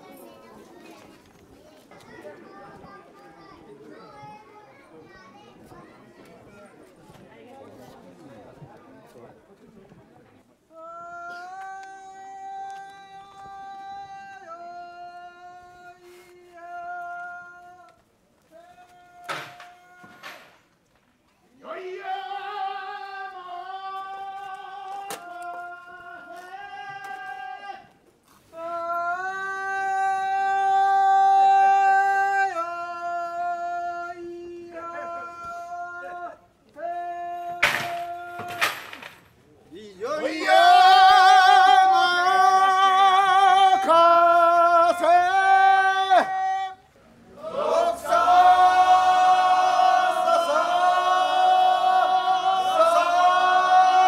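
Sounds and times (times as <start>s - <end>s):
crowd chatter with children: 0.0s - 18.8s.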